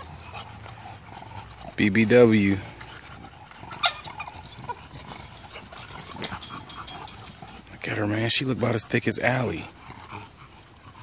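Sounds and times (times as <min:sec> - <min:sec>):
dogs shuffling: 0:00.0 - 0:09.9
dogs panting: 0:00.0 - 0:11.0.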